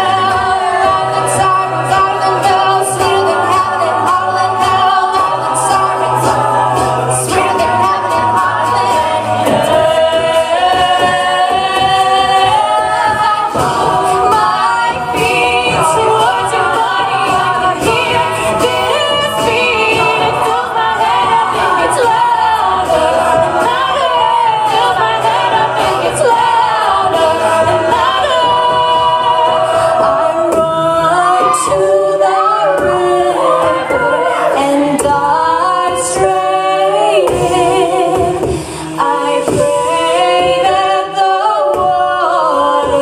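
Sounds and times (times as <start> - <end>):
group vocal harmonies: 0.0 - 43.0
vocal percussion beat: 0.0 - 43.0
woman singing lead: 0.0 - 43.0.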